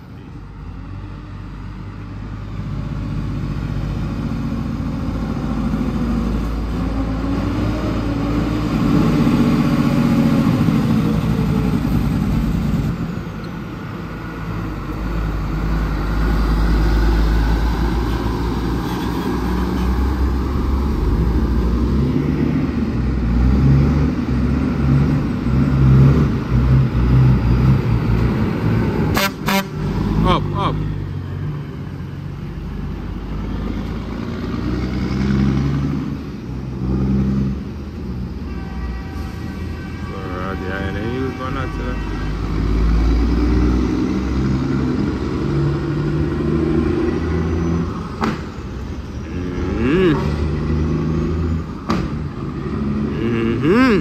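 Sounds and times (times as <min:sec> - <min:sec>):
diesel trucks passing: 0:00.0 - 0:54.0
indistinct voices: 0:49.3 - 0:50.5, 0:53.0 - 0:54.0.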